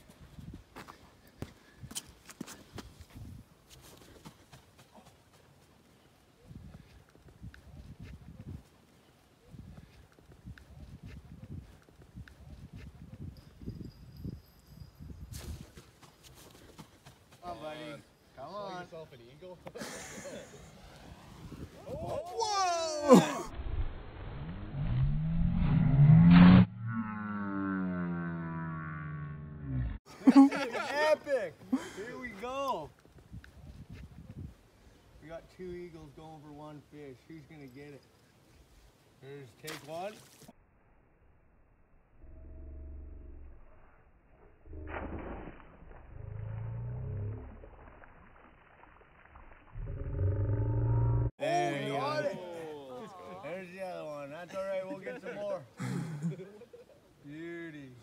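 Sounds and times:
slowed voice groaning: 26.8 - 30.0.

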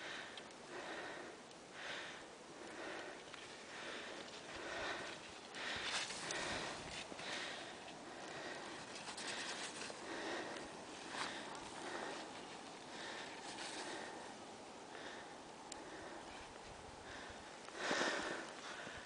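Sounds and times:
heavy breathing: 0.0 - 19.0.

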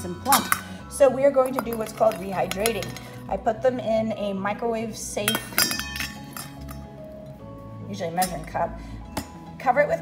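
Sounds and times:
soft background music: 0.0 - 10.0
kitchenware clinking: 1.4 - 3.2, 5.2 - 6.8.

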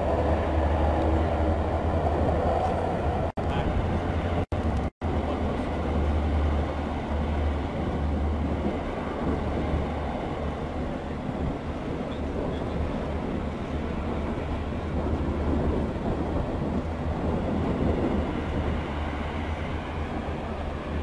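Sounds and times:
hovercraft engines rumbling: 0.0 - 21.0.

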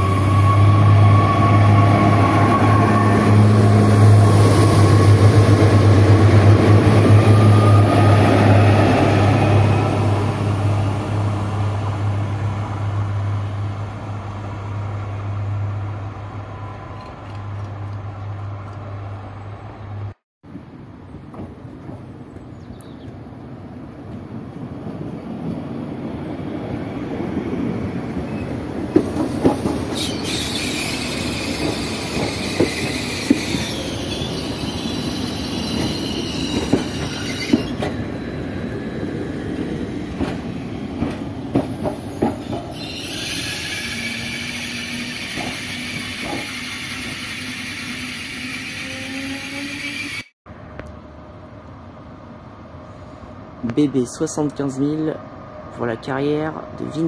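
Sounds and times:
high-pitched wheel squeal: 0.0 - 3.5, 30.0 - 37.8, 42.7 - 50.3
train wheels rumbling on rail: 0.0 - 19.2, 19.9 - 50.3.

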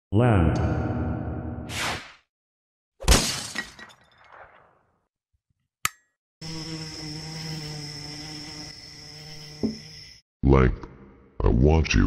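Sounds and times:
glass shattering: 3.0 - 4.5.

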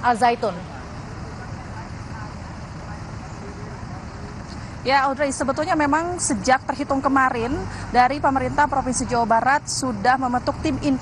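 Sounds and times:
low rumble of traffic: 0.0 - 11.0
faint distant voices: 0.1 - 5.5.

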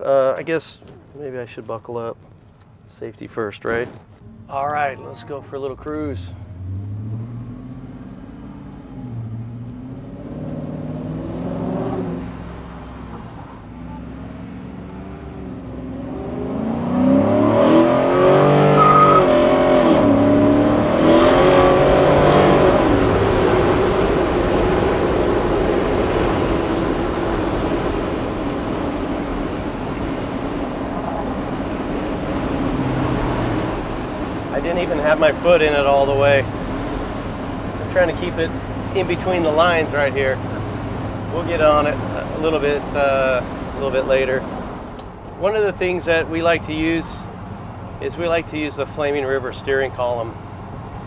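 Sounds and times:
truck engine accelerating: 3.6 - 51.0.

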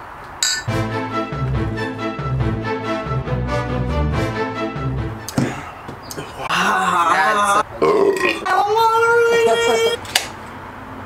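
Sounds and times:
man burping: 7.6 - 8.5.

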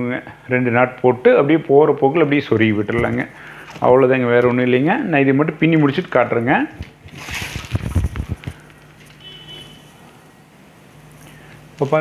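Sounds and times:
faint high whine: 0.0 - 12.0
low steady hum: 0.0 - 12.0.

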